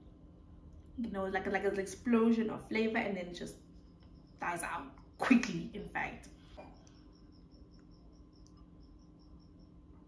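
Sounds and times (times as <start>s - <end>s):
low steady hum: 0.0s - 10.0s
faint high-pitched chirping: 1.2s - 10.0s.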